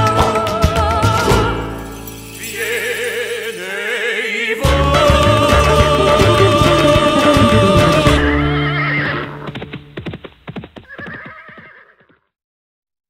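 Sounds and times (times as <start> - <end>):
latin dance band playing: 4.6 - 11.0.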